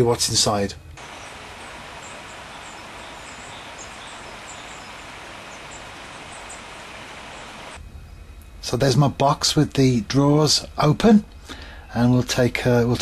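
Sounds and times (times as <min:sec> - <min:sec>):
outdoor background hiss: 0:00.0 - 0:13.0
high bird chirps: 0:01.0 - 0:07.8.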